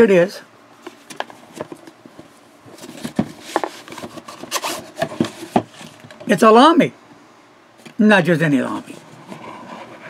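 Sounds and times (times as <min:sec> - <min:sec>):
cardboard sleeve rubbing and scraping: 0:08.9 - 0:10.0.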